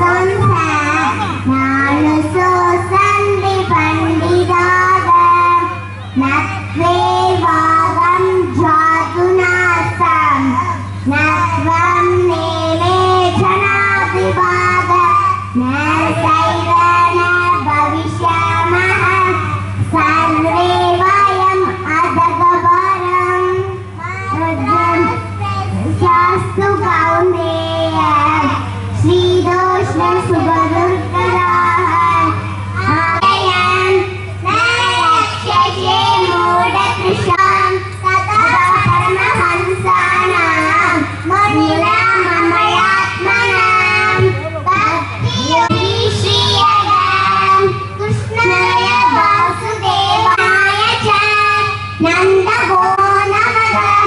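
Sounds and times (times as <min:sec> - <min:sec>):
girls singing together: 0:00.0 - 0:54.0
low hum: 0:00.0 - 0:54.0.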